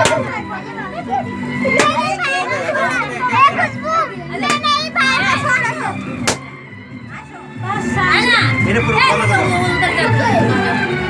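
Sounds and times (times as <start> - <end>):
sharp crack: 0.0 - 0.3, 1.8 - 2.1, 4.4 - 4.7, 6.2 - 6.5
children shouting and chattering: 0.0 - 11.0.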